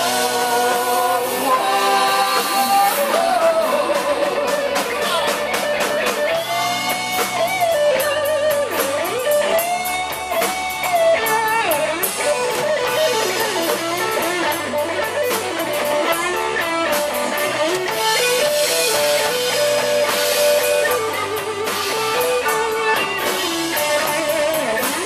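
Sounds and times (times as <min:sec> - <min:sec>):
electric guitar lead with bent notes: 0:00.0 - 0:25.0
live rock band: 0:00.0 - 0:25.0.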